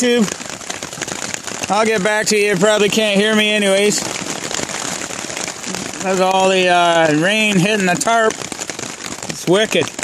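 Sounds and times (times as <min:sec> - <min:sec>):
heavy rain on tarp: 0:00.0 - 0:10.0.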